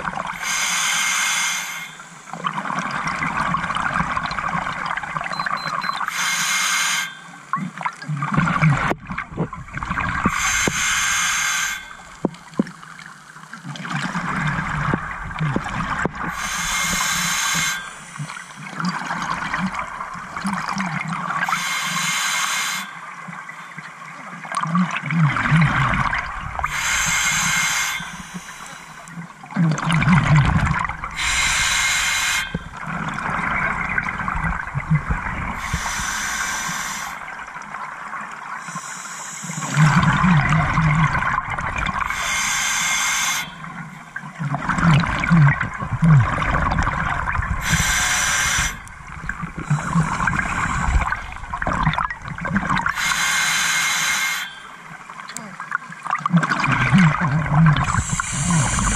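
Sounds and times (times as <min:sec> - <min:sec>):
exhaled bubbles gurgling: 0:00.0 - 0:00.6, 0:01.7 - 0:06.1, 0:07.4 - 0:11.1, 0:11.7 - 0:21.6, 0:23.1 - 0:58.9
regulator inhale hiss: 0:00.3 - 0:02.4, 0:06.1 - 0:07.3, 0:10.2 - 0:12.3, 0:16.3 - 0:18.8, 0:21.4 - 0:23.0, 0:26.6 - 0:29.2, 0:31.1 - 0:32.8, 0:35.5 - 0:37.4, 0:38.6 - 0:40.2, 0:42.0 - 0:43.8, 0:47.6 - 0:51.5, 0:52.9 - 0:54.9, 0:57.9 - 0:58.9.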